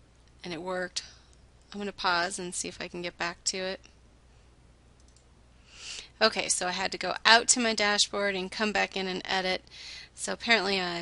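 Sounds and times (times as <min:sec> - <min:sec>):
faint computer mouse clicks: 0:05.0 - 0:05.3.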